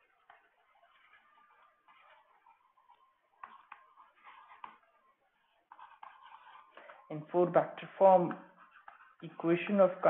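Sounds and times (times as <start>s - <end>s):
stylus scratching on pen tablet: 0.0s - 10.0s
stylus ticks on pen tablet: 0.0s - 10.0s.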